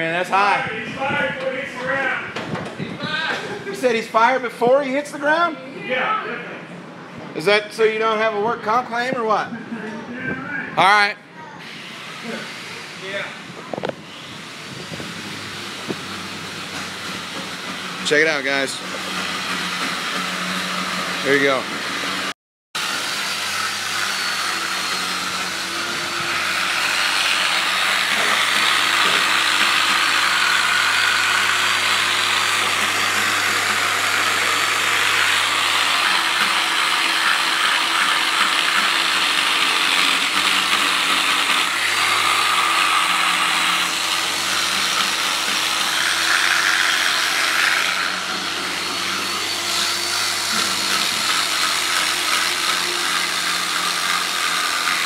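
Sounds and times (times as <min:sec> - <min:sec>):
electric buffer motor whine: 0:18.8 - 0:53.9.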